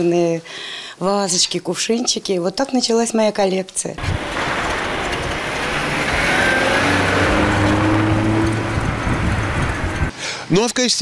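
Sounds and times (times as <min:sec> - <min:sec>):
car engine running: 0:04.0 - 0:10.1.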